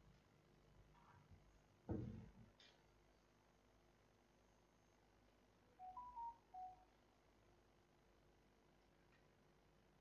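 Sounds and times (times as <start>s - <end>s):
faint electronic beep tune: 5.8s - 7.0s.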